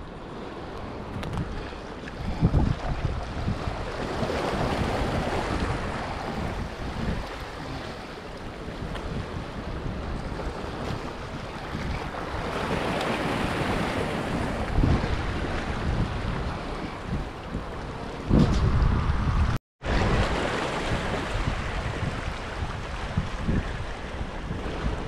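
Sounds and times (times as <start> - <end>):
wind buffeting microphone: 0.0 - 25.0
waves splashing against rocks: 0.3 - 19.0, 19.9 - 25.0.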